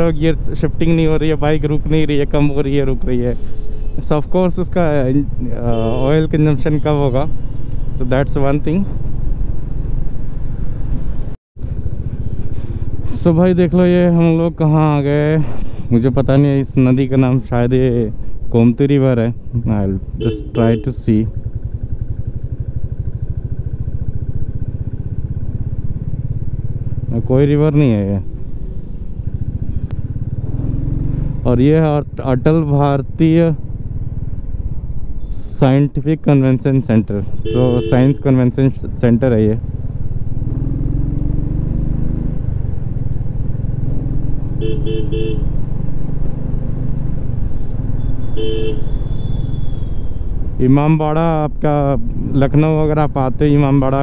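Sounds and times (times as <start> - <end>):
motorcycle engine running: 0.0 - 18.5, 19.4 - 35.5, 36.3 - 54.0
horn toots: 5.6 - 8.0, 20.2 - 21.2, 37.4 - 38.4, 44.6 - 45.5, 47.6 - 50.1.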